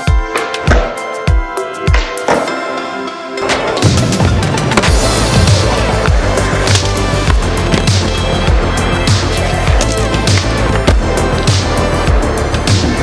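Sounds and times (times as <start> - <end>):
loud background music: 0.0 - 13.0
skateboard wheels rolling: 3.4 - 11.0.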